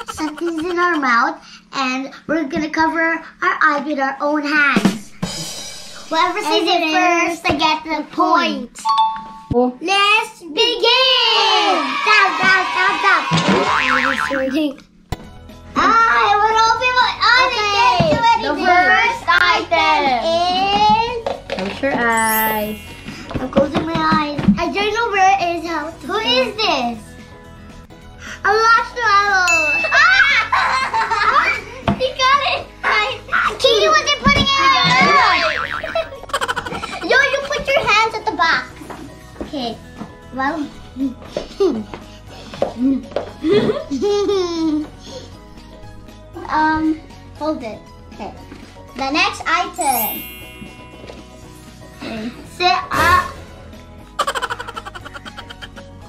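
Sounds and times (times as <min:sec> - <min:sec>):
girls laughing and squealing: 0:00.0 - 0:01.1, 0:29.8 - 0:31.7, 0:34.8 - 0:37.6, 0:54.2 - 0:55.8
person giggling: 0:00.0 - 0:01.2, 0:35.8 - 0:37.2, 0:54.2 - 0:55.8
background music: 0:00.0 - 0:01.7, 0:04.8 - 0:07.4, 0:12.7 - 0:56.0.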